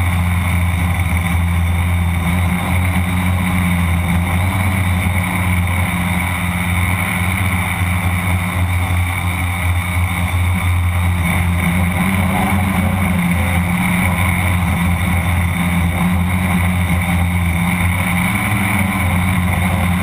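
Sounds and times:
drone motors and propellers droning: 0.0 - 20.0.

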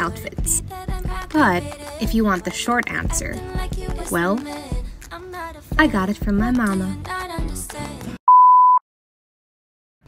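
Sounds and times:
music with singing: 0.0 - 8.2
high test tone beep: 8.3 - 8.8.

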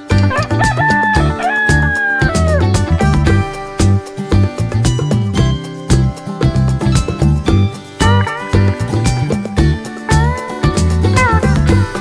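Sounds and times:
upbeat background music: 0.0 - 12.0
rooster crowing: 0.3 - 2.7.

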